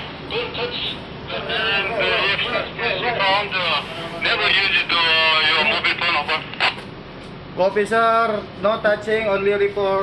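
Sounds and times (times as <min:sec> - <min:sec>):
low background noise: 0:00.0 - 0:10.0
people talking: 0:00.3 - 0:06.9, 0:07.6 - 0:10.0.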